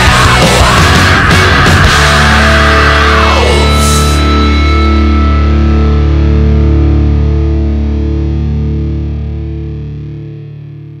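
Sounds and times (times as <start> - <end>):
distorted electric guitar chord: 0.0 - 11.0
low bass note: 1.5 - 11.0.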